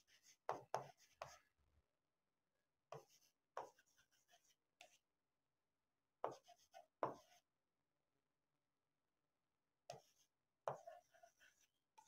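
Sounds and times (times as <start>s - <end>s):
marker writing on a board: 0.0s - 1.5s, 2.9s - 5.0s, 6.2s - 7.5s, 9.9s - 12.0s.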